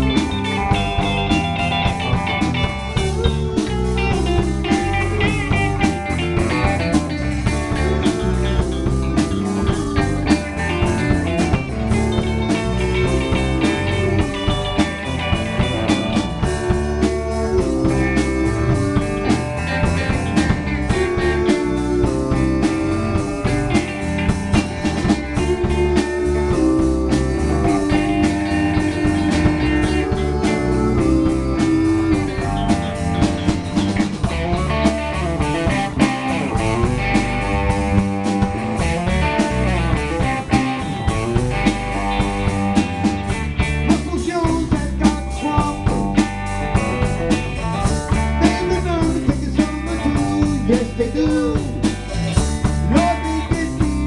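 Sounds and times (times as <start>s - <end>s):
drum kit: 0.0s - 54.0s
electric bass: 0.0s - 54.0s
electric guitars: 0.0s - 54.0s.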